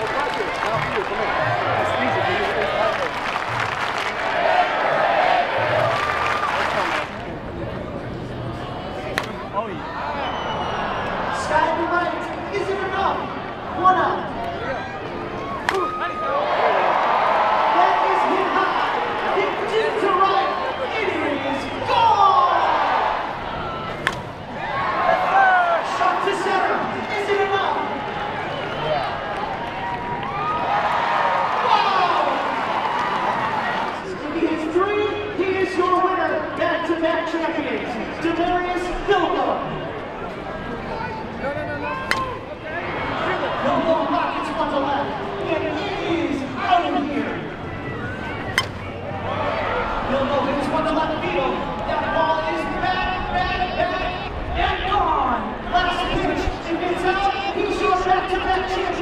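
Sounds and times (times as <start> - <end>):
people talking and calling out: 0.0 - 30.8, 33.4 - 59.0
crowd noise: 0.0 - 59.0
bat hitting softball: 42.0 - 42.4, 48.5 - 48.9.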